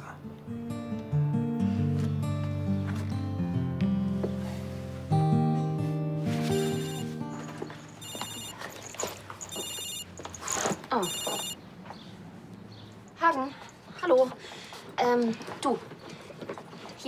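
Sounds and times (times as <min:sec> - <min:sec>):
soft background music: 0:00.0 - 0:08.8
mobile phone ringtone: 0:06.5 - 0:07.2, 0:08.0 - 0:08.6, 0:09.5 - 0:10.2, 0:11.0 - 0:11.6.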